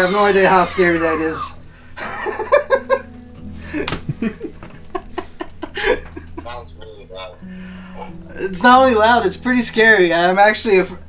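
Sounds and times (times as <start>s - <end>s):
man laughing: 0.0s - 6.7s
background music with low notes: 0.0s - 11.0s.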